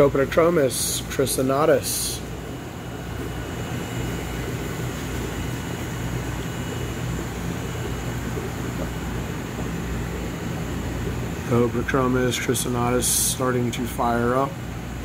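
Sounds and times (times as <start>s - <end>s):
low constant hum: 0.0s - 15.0s.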